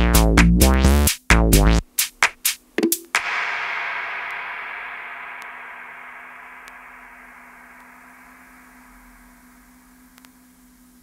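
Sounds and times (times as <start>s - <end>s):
hissing noise tail: 3.2s - 11.0s
steady low hum: 3.2s - 11.0s.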